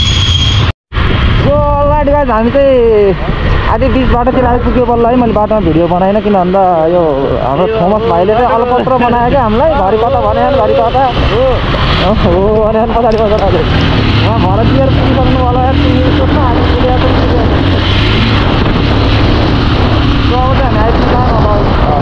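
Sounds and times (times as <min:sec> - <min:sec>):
wind rumble on microphone: 0:00.9 - 0:22.0
motorcycle engine cruising: 0:08.0 - 0:22.0.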